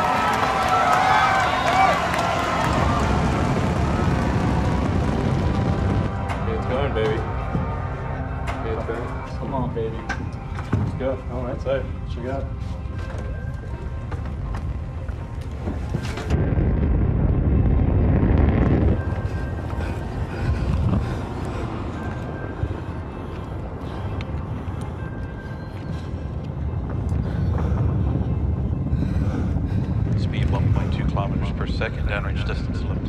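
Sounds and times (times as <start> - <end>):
background music: 0.0 - 33.0
deep rocket rumble: 0.0 - 33.0.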